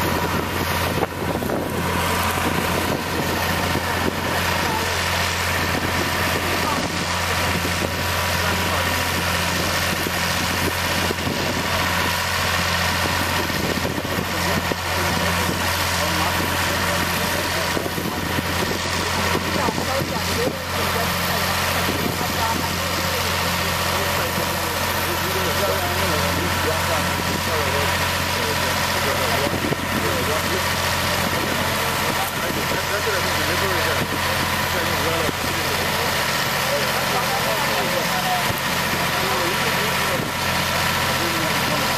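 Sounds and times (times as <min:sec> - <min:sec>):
engine running steadily: 0:00.0 - 0:41.9
voices talking: 0:00.0 - 0:41.9.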